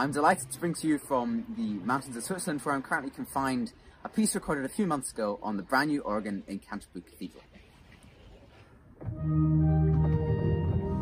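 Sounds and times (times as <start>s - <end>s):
pipe organ chords: 9.0s - 11.0s.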